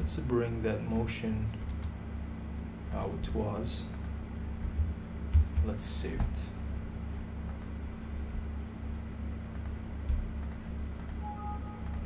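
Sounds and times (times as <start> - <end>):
low electrical hum: 0.0 - 12.0
keystrokes: 7.5 - 7.7, 9.5 - 12.0
computer mouse clicks: 7.5 - 7.8, 9.5 - 12.0
two-note electronic chime: 11.2 - 12.0.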